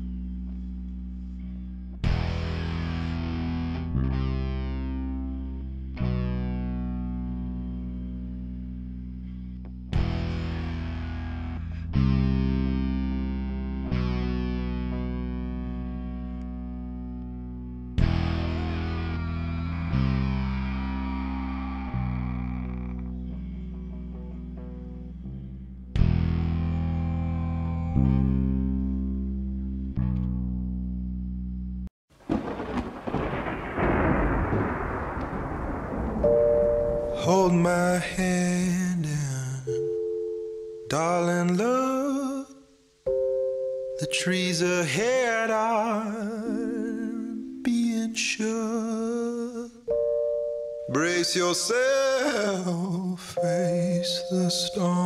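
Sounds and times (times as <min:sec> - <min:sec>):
distorted electric guitar chords: 0:00.0 - 0:31.8
rain: 0:32.2 - 0:37.3
thunder rumble: 0:32.2 - 0:38.6.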